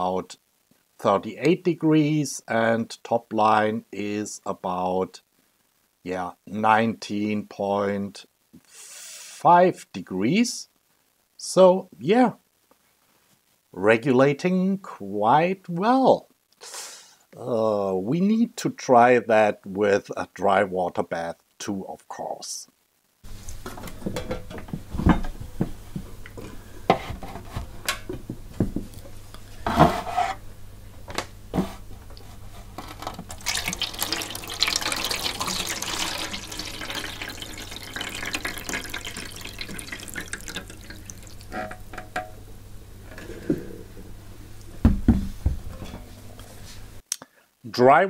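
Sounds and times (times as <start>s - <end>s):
water pouring from metal tank: 33.2s - 42.3s.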